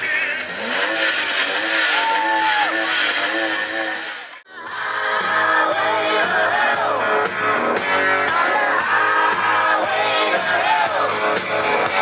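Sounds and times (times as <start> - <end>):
car engine revving: 0.0 - 4.4.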